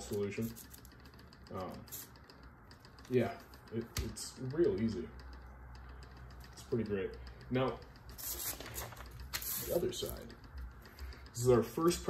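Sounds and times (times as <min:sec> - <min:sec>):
gloved hand brushing paper: 0:08.2 - 0:09.8.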